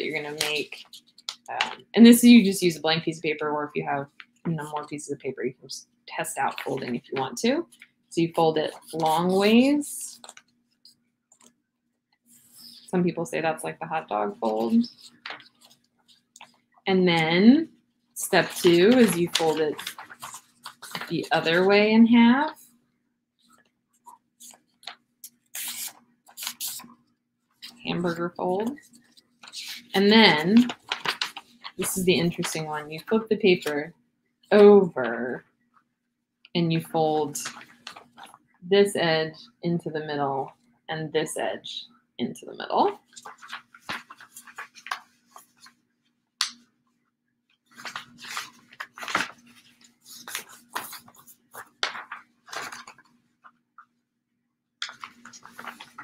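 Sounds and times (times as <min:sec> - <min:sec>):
paper rustling and crinkling: 0:00.1 - 0:01.8, 0:08.6 - 0:10.6, 0:14.3 - 0:16.7, 0:18.2 - 0:22.6, 0:23.4 - 0:33.1, 0:37.4 - 0:38.4, 0:42.9 - 0:45.8, 0:47.7 - 0:53.6, 0:54.8 - 0:56.0.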